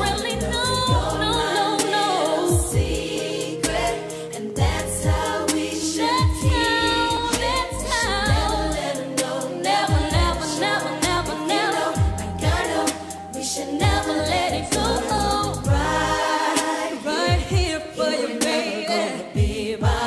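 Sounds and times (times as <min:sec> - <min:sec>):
sliding deep bass notes: 0:00.0 - 0:01.4, 0:04.6 - 0:05.3, 0:06.4 - 0:08.8, 0:12.0 - 0:12.8, 0:13.8 - 0:16.2
women singing in harmony: 0:00.0 - 0:20.0
drums: 0:14.7 - 0:17.8.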